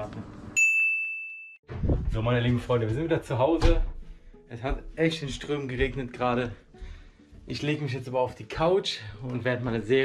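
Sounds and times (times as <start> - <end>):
high bell-like ding: 0.6 - 1.6.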